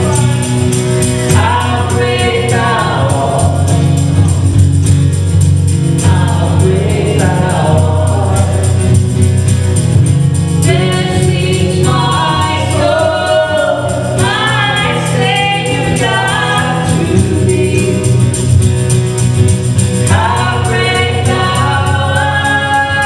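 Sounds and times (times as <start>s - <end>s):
man and woman singing in harmony: 0.0s - 4.6s, 5.9s - 9.2s, 10.6s - 18.6s, 20.0s - 23.0s
strummed acoustic guitar: 0.0s - 23.0s
tambourine: 0.0s - 23.0s.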